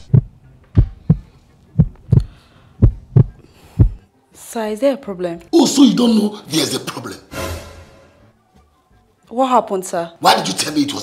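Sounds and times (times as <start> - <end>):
heartbeat thumps: 0.0 - 4.0.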